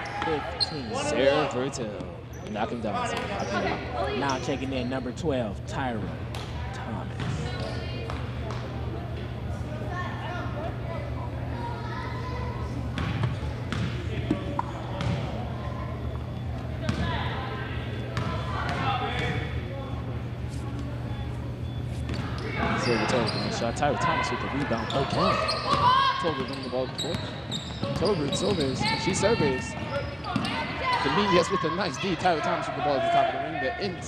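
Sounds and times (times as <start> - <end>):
people talking: 0.0 - 6.1, 22.6 - 25.5, 27.8 - 34.0.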